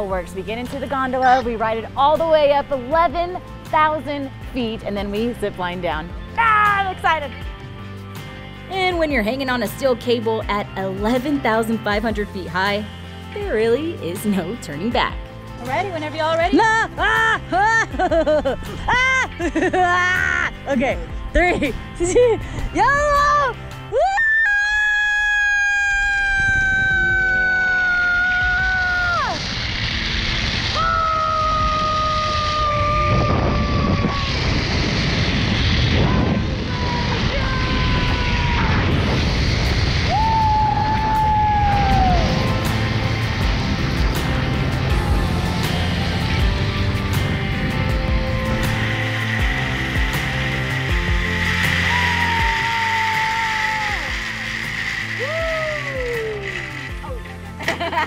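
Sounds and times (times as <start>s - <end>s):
background music: 0.0s - 58.0s
woman screaming: 23.1s - 29.4s, 30.7s - 34.6s, 36.0s - 39.0s, 40.1s - 42.3s, 51.8s - 54.2s, 55.2s - 56.5s
steady rushing noise: 26.4s - 58.0s.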